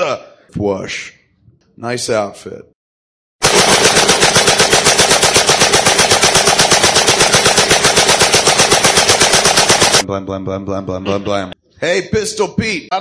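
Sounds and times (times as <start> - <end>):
automatic machine-gun fire: 3.4 - 10.0.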